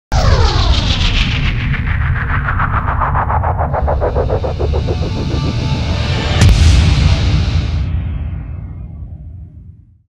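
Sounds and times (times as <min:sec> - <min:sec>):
rapidly pulsing sweep: 0:00.2 - 0:07.9
deep low drone: 0:00.2 - 0:09.8.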